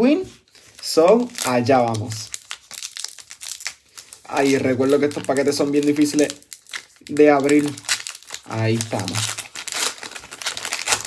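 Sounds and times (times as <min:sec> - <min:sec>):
wrapper crinkling: 0:00.3 - 0:11.0
card pack wrapper tearing: 0:00.5 - 0:11.0.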